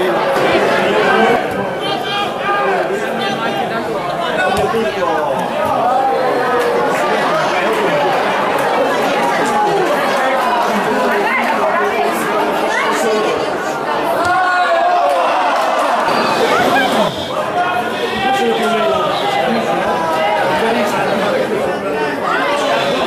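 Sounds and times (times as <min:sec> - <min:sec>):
chatter of many voices: 0:00.0 - 0:23.0.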